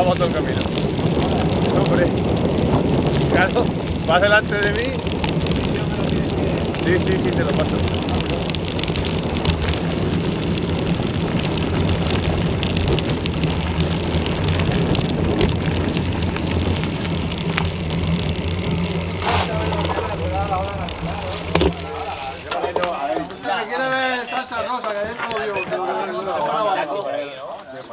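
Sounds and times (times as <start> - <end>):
wind rushing over microphone: 0.0 - 17.2
bike tyres rolling on gravel: 0.0 - 24.1.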